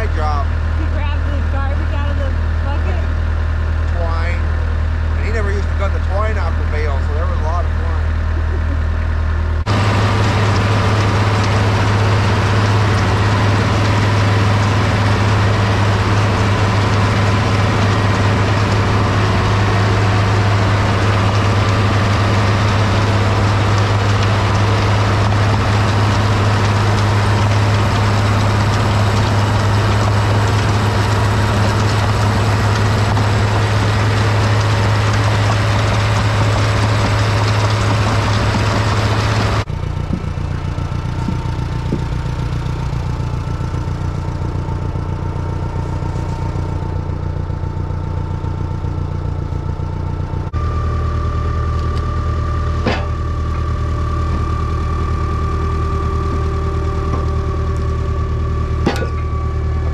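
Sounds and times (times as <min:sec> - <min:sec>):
diesel tractor engine running: 0:00.0 - 0:59.9
manure spreader flinging: 0:08.9 - 0:59.9.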